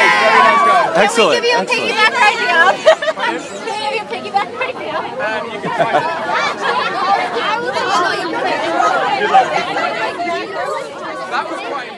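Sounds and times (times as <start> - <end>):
crowd chattering: 0.0 - 11.9.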